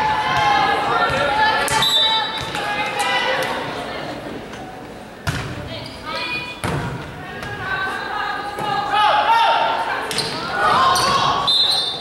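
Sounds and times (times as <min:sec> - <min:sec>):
players' voices: 0:00.0 - 0:12.0.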